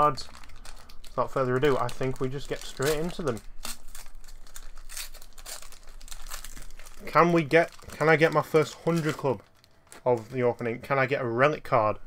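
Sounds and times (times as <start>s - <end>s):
plastic wrapper tearing and crinkling: 0.0s - 11.1s.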